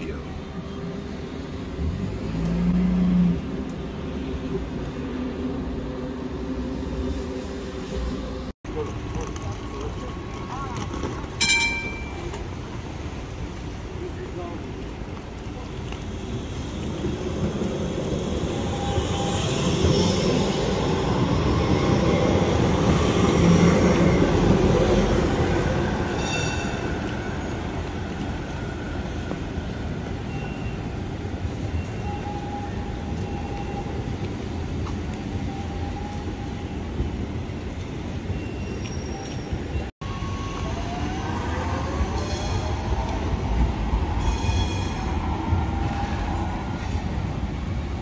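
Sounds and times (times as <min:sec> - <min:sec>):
tram running on track: 0:00.0 - 0:48.0
wheels squealing on rails: 0:04.4 - 0:13.2, 0:14.2 - 0:47.9.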